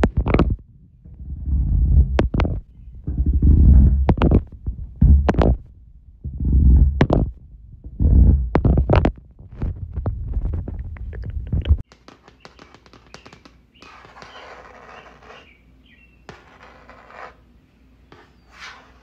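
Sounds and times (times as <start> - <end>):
heavy muffled thuds: 0.0 - 11.9
rough scratching: 0.0 - 15.6, 16.3 - 17.5, 18.1 - 19.0.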